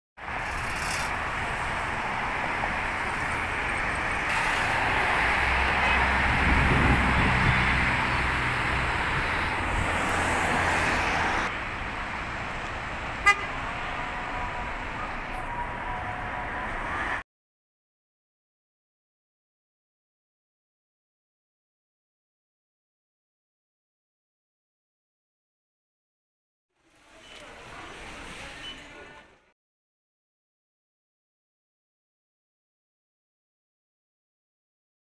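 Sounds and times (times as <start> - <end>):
road traffic noise: 0.2 - 17.2, 26.8 - 29.6
heavy vehicle rumbling past: 2.9 - 15.0
car horn toot: 13.2 - 13.6.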